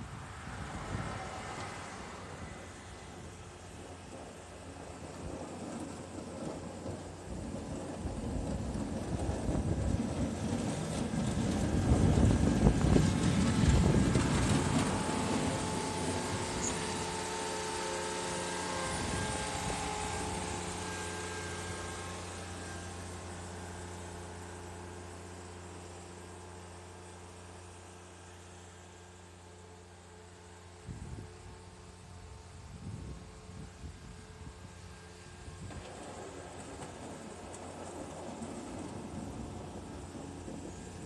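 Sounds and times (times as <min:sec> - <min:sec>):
diesel engine rumbling: 0:00.0 - 0:28.0, 0:33.8 - 0:41.0.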